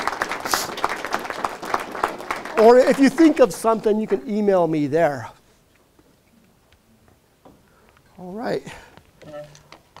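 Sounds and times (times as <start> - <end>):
audience clapping: 0.0 - 4.8.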